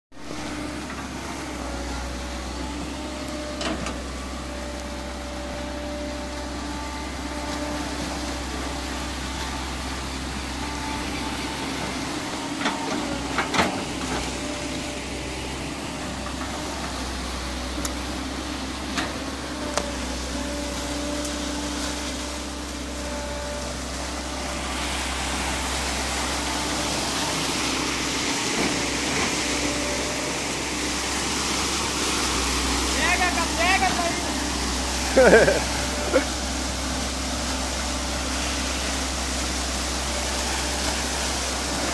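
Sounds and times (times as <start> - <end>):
excavator diesel engine running: 0.1 - 41.9.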